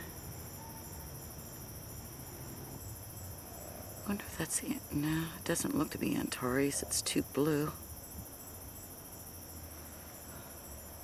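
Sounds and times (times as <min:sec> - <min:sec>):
crickets trilling: 0:00.0 - 0:11.0
pulsing cricket chirp: 0:00.0 - 0:11.0.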